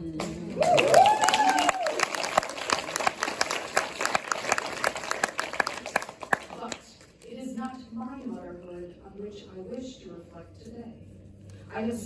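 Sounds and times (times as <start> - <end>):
audience applauding: 0.4 - 6.8
person cheering: 0.6 - 2.1.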